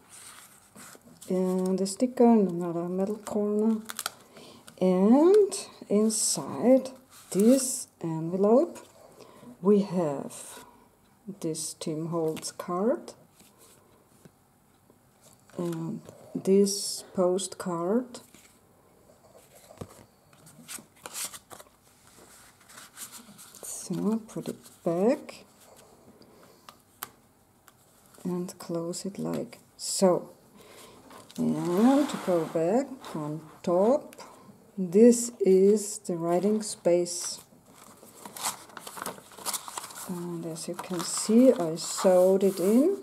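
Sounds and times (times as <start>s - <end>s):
paper cards rustling: 0.1s - 5.6s, 19.4s - 24.9s, 35.6s - 43.0s.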